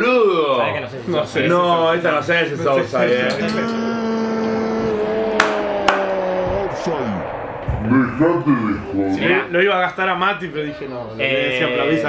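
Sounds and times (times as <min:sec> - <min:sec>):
man singing a long note: 0:03.6 - 0:07.6.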